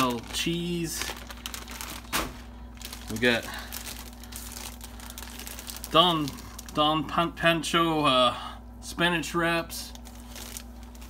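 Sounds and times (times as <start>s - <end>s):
plastic packaging crinkling: 0.0s - 7.0s, 9.9s - 11.0s.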